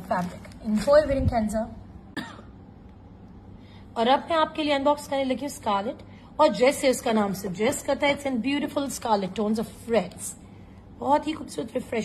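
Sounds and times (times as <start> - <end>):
woman clearing throat: 2.1 - 2.6.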